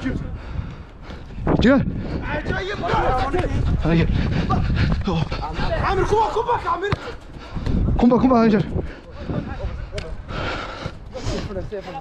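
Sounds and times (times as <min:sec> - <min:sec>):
footballers shouting: 0:02.2 - 0:08.3.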